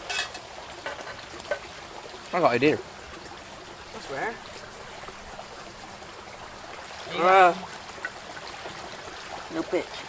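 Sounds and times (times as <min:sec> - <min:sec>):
stream trickling: 0:00.0 - 0:10.0.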